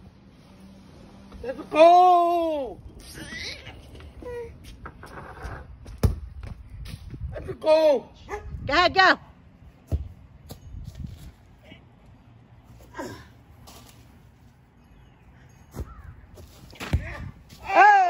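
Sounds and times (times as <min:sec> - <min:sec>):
ball kicked thumps: 0:05.8 - 0:07.1, 0:09.8 - 0:10.7, 0:15.7 - 0:17.5.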